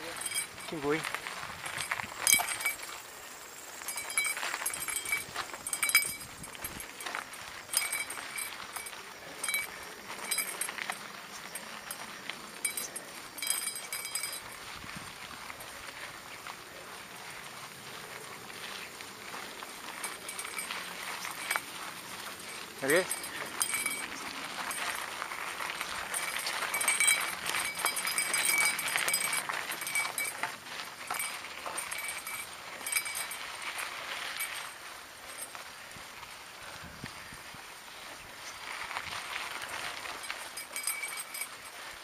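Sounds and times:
bike chain and frame rattling: 0:00.0 - 0:42.0.

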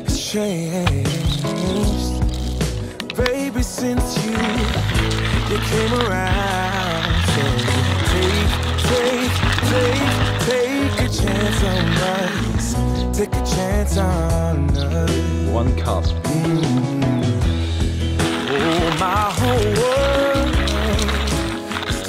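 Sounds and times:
background music: 0:00.0 - 0:22.0
coffee grinder crushing beans: 0:00.1 - 0:13.2, 0:17.9 - 0:22.0.

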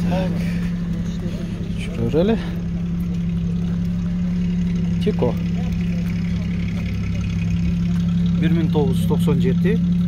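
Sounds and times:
engine idling hum: 0:00.0 - 0:10.0.

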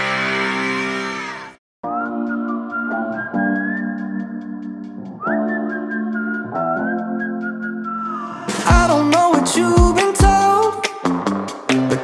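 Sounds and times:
high whistled melody: 0:01.8 - 0:09.0.

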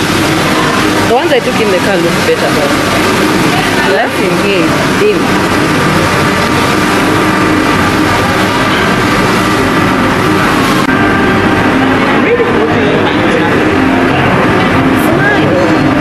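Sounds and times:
many voices talking: 0:00.0 - 0:16.0
steady hum: 0:00.0 - 0:16.0.

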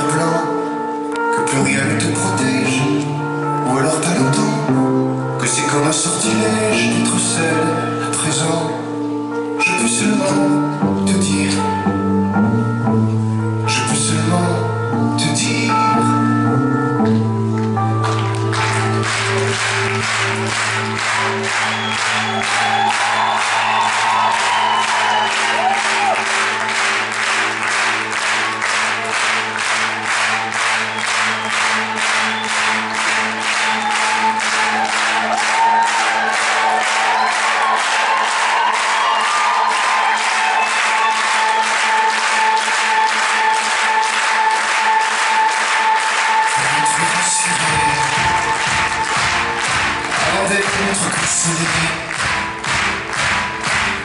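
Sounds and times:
band playing: 0:00.0 - 0:54.0
held keyboard chords: 0:00.0 - 0:54.0
audience clapping in time: 0:17.0 - 0:54.0.

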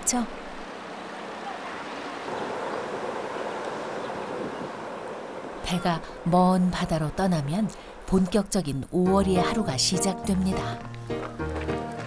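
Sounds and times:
boat engine and rushing water: 0:00.0 - 0:09.1.

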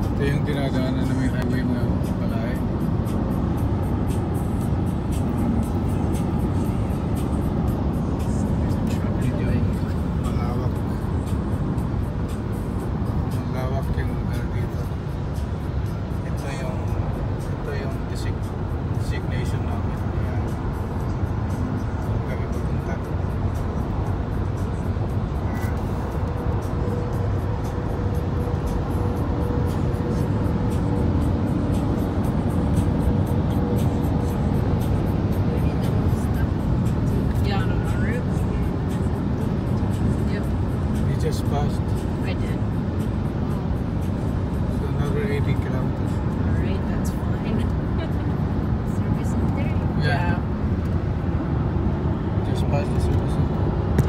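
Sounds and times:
tyre road and engine rumble: 0:00.0 - 0:54.0.

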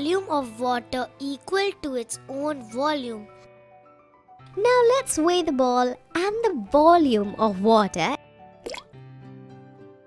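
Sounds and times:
soft background music: 0:00.0 - 0:10.0
cartoon plop sound effect: 0:08.6 - 0:08.9.

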